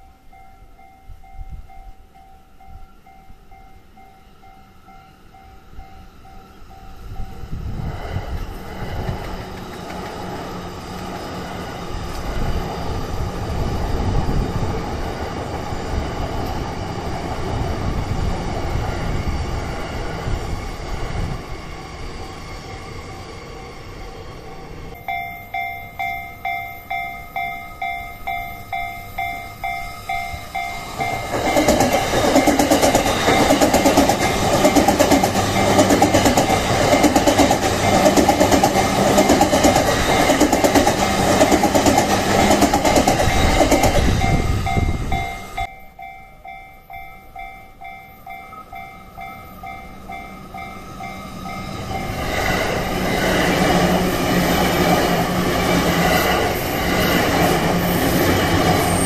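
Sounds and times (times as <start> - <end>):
level crossing warning bell: 0.0 - 7.6, 24.9 - 52.7
electric train passing: 0.0 - 59.0.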